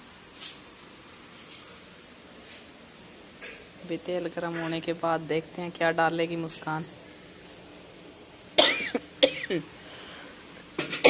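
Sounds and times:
woman coughing: 8.6 - 9.7.

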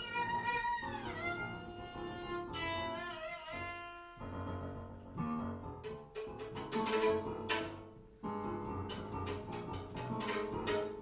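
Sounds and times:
sustained violin notes: 0.0 - 5.0.

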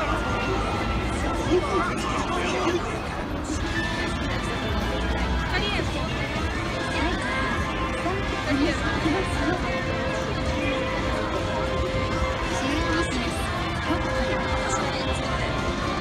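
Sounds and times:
background music: 0.0 - 16.0
crowd chatter: 0.0 - 16.0.

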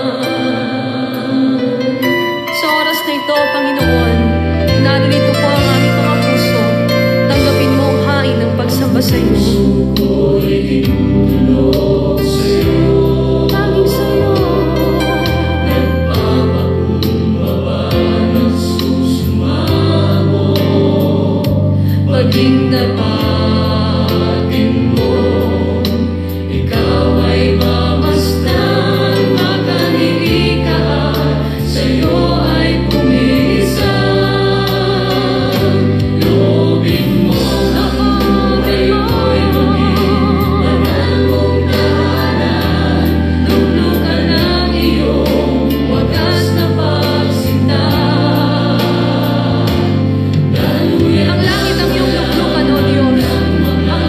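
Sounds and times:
choir singing a hymn: 0.0 - 54.0
instrumental backing with steady beat: 0.0 - 54.0.

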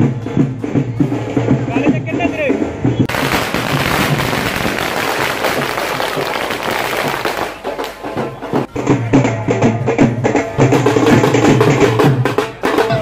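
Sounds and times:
firecrackers popping: 3.0 - 8.7.

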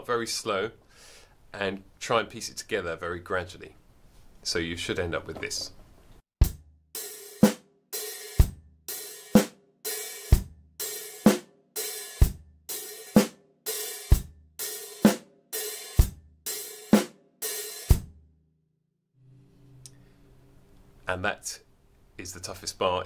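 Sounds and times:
bass drum and snare: 6.4 - 11.5.

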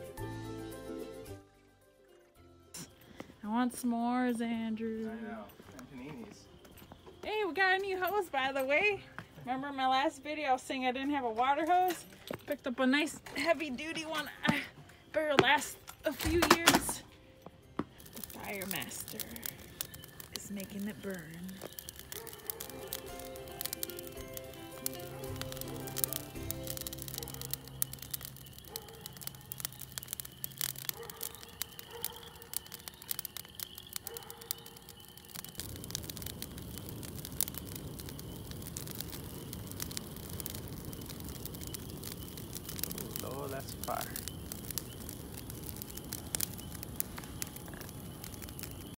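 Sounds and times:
music with held notes: 0.0 - 3.2
wood fire crackling: 0.0 - 49.0
fire rushing: 17.9 - 49.0.

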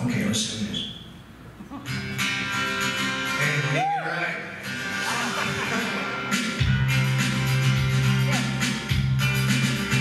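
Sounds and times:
live band playing: 4.6 - 10.0.

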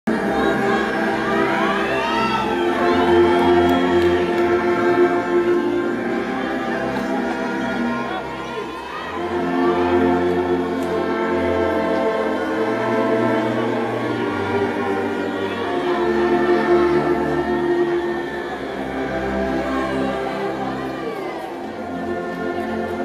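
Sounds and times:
brass band playing a hymn: 0.1 - 23.0.

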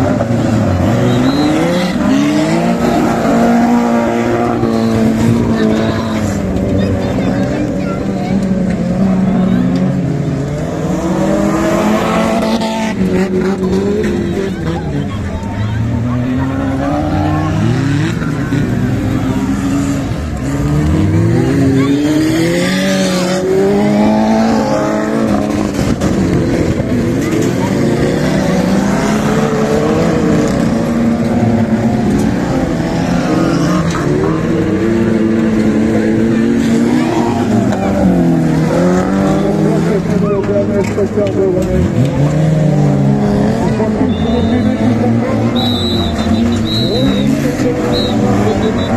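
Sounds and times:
race car engines revving: 0.0 - 48.9.

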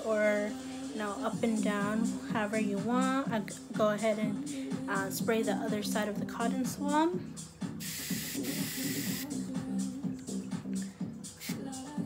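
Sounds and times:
spray can hissing: 7.8 - 9.3.

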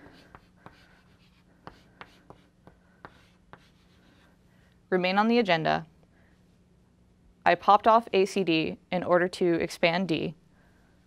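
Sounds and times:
chalk writing on blackboard: 0.0 - 4.4.

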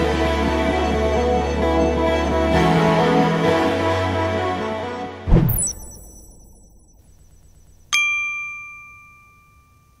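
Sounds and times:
bright chime ding: 5.4 - 10.0.

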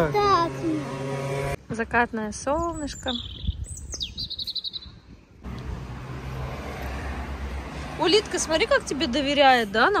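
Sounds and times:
bird chirping: 2.4 - 5.4.

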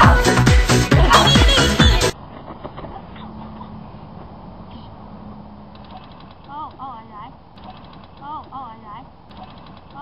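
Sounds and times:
outdoor background noise: 0.9 - 10.0.

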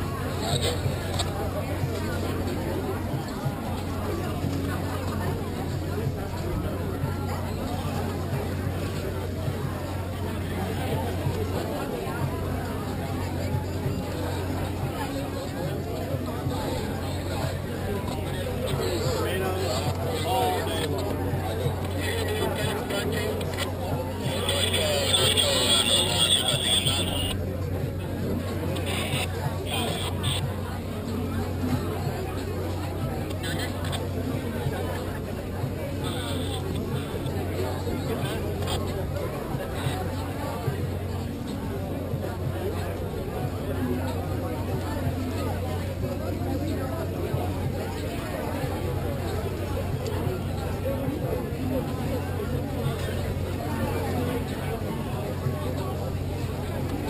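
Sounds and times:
background chatter: 0.0 - 57.0.

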